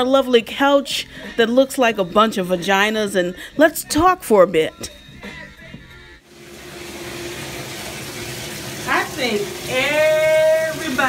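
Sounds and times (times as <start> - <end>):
shower water running: 6.2 - 11.0.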